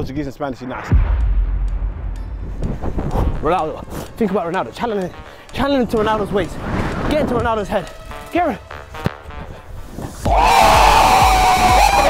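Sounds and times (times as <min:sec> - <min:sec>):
loud music with steady beat: 0:10.2 - 0:12.0.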